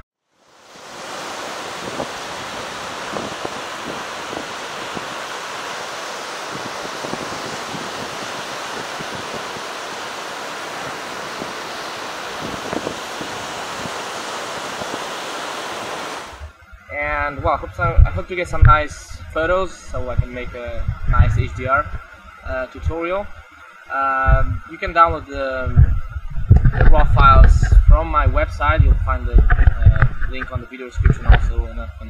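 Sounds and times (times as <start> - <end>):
wind: 0.2 - 32.0
sea wash on rocky shore: 0.4 - 16.6.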